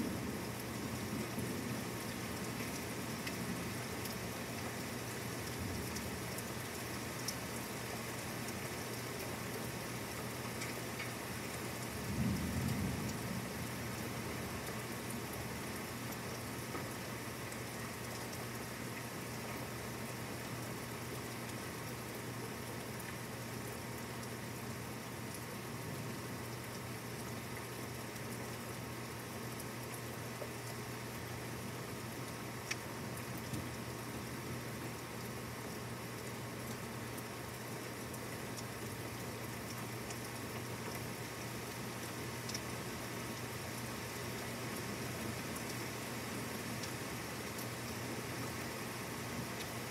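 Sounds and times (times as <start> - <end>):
steady rain falling: 0.0 - 49.9
low rumble of thunder: 12.0 - 13.8.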